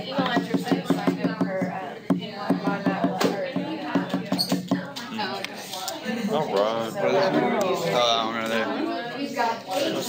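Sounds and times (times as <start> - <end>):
classroom voices: 0.0 - 10.0
marker squeaking on whiteboard: 4.0 - 4.9.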